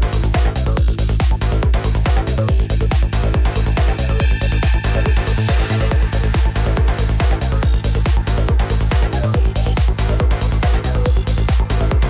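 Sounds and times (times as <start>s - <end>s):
kick drum: 0.0s - 12.0s
psytrance dance music: 0.0s - 12.0s
rolling bassline: 0.0s - 12.0s
synth layers: 0.0s - 12.0s.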